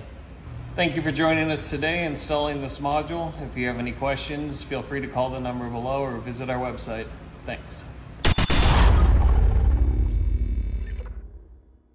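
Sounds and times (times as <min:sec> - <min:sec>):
deep rumbling impact: 0:08.3 - 0:11.9.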